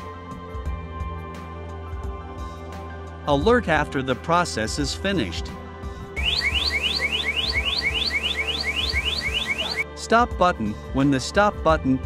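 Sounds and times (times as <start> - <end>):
machine alarm rising tones: 6.2 - 9.8.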